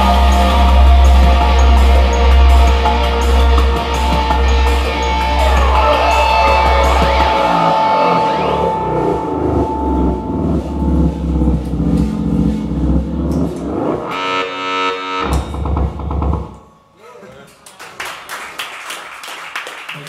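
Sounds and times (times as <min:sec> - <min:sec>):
rock band ringing chord: 0:00.0 - 0:15.8
voices in room: 0:16.9 - 0:20.0
scattered claps: 0:17.5 - 0:20.0.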